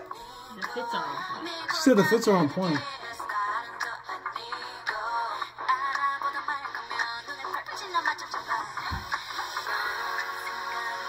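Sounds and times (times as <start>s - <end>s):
girl group singing pop song: 0.0s - 11.0s.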